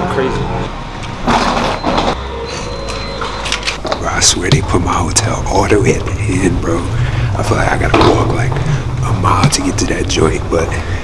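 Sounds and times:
elevator car hum: 0.4s - 11.0s
faint high whine: 1.7s - 11.0s.

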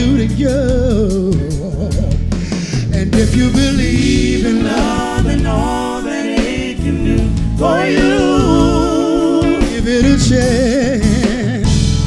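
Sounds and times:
man singing with vibrato: 0.0s - 12.0s
soul band playing: 0.0s - 12.0s.

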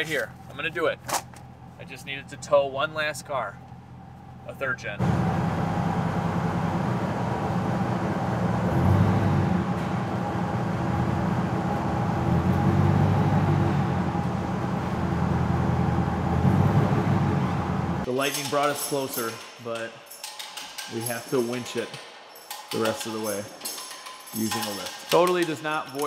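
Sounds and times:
truck engine running under load: 3.6s - 18.1s.

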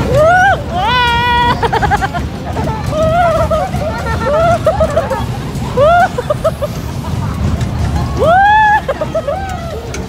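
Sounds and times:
ride rumbling: 0.0s - 10.0s
rider whooping: 2.8s - 7.0s, 8.0s - 10.0s.

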